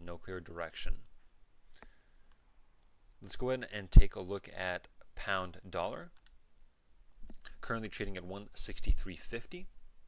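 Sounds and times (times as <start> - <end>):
computer mouse clicks: 6.1 - 6.4.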